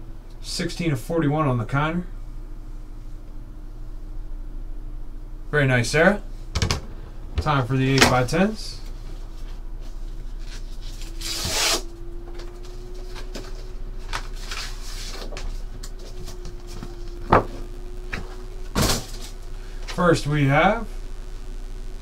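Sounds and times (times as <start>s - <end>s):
low electrical hum: 0.0s - 22.0s
cardboard rustling and scraping: 8.9s - 19.4s.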